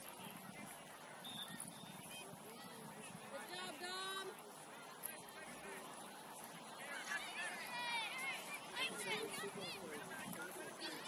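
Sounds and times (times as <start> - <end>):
distant crowd voices: 0.0 - 11.0.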